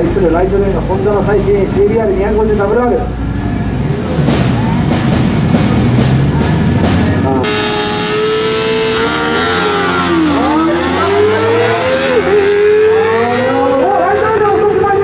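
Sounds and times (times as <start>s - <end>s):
motorcycle engines revving: 0.0s - 15.0s.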